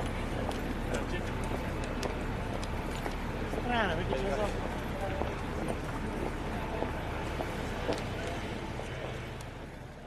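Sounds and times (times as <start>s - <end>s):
many people talking: 0.0s - 10.0s
steady street rumble: 0.0s - 10.0s.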